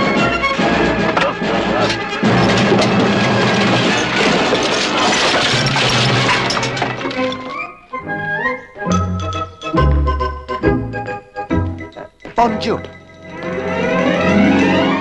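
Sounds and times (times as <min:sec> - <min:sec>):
crashes and impacts: 0:01.8 - 0:07.7.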